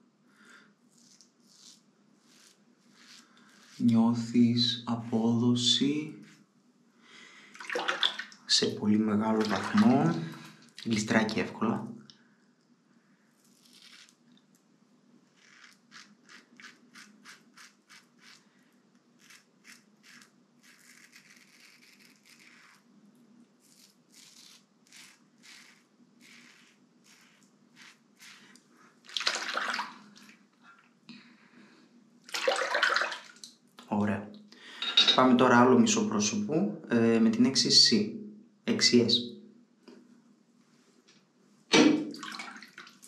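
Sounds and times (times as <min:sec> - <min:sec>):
razor scraping stubble: 0:00.9 - 0:04.2, 0:13.4 - 0:14.2, 0:15.4 - 0:18.5, 0:19.2 - 0:22.9, 0:23.6 - 0:28.7.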